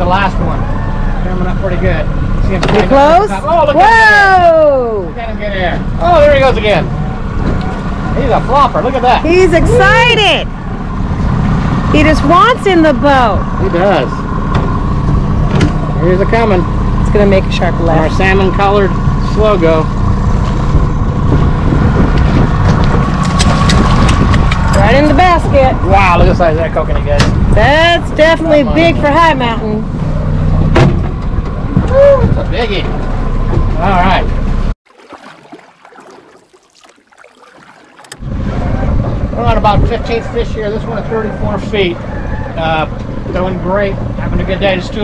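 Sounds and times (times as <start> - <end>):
outboard motor running: 5.1 - 25.3, 32.9 - 40.2.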